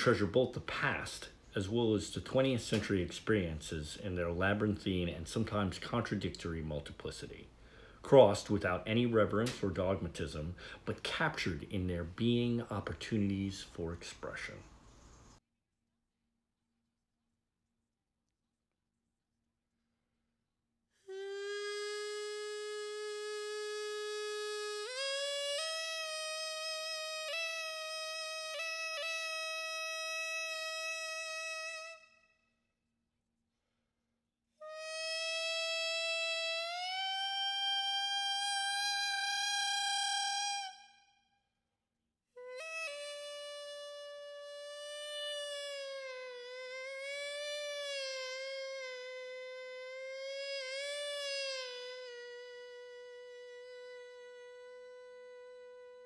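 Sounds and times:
double-reed pipe long note: 21.1s - 32.1s, 34.6s - 41.2s, 42.4s - 56.0s.

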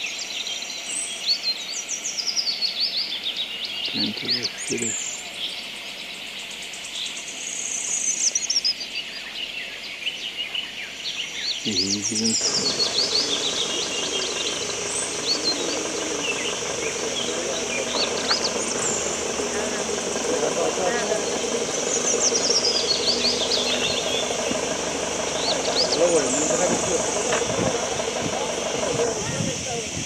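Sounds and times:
birds chirping: 1.0s - 30.0s
train engine droning: 11.7s - 30.0s.

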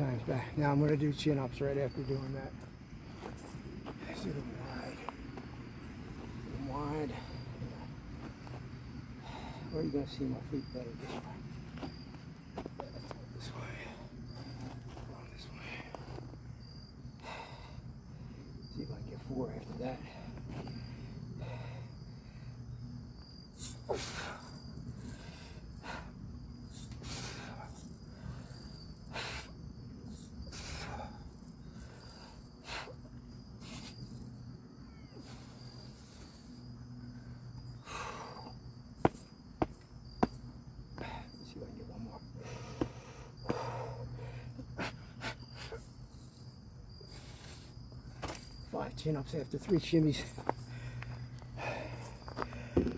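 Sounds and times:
crickets chirring: 0.0s - 52.9s
man breathing hard: 9.2s - 9.8s, 17.1s - 18.6s, 20.0s - 22.8s, 23.6s - 29.6s, 37.8s - 38.7s, 42.3s - 45.9s, 50.4s - 52.9s.

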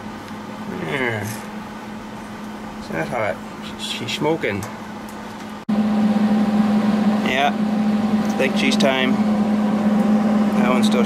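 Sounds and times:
welder cooling fan hum: 0.0s - 11.0s.

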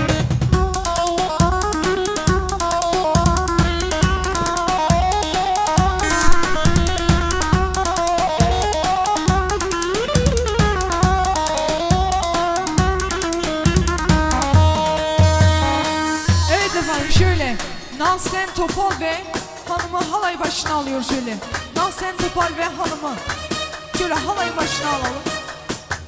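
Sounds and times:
steady bass drum beat: 0.0s - 20.0s.

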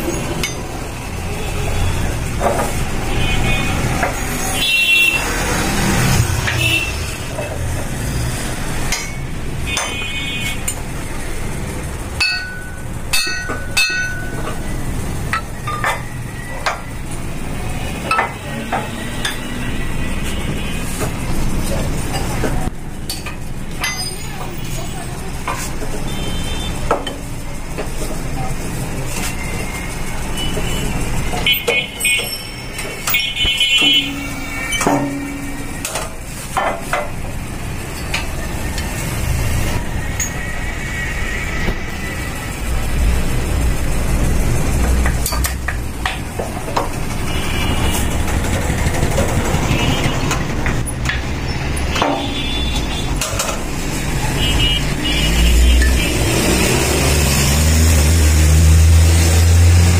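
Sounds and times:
workshop background noise: 0.0s - 59.9s
metal clinks and knocks: 12.2s - 14.7s, 23.0s - 24.5s.

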